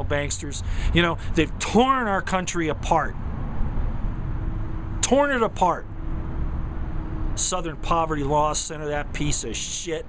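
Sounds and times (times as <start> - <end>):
man speaking: 0.0 - 3.2, 5.0 - 5.9, 7.4 - 10.0
outdoor background rumble: 0.0 - 10.0.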